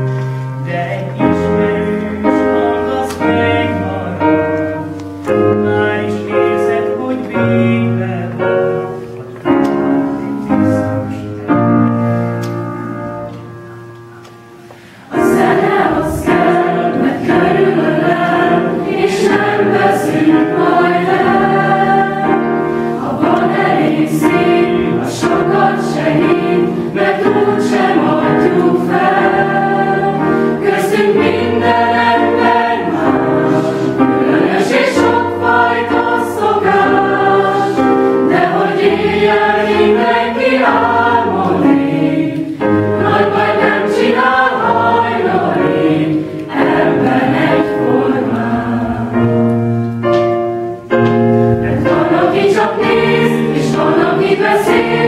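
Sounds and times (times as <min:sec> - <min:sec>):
choir singing: 0:00.6 - 0:13.3, 0:14.5 - 0:49.6, 0:51.5 - 0:55.0.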